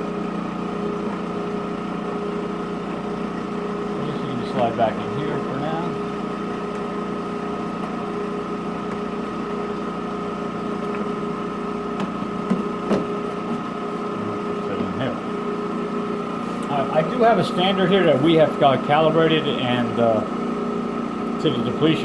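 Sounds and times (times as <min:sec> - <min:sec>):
vacuum pump humming: 0:00.0 - 0:22.0.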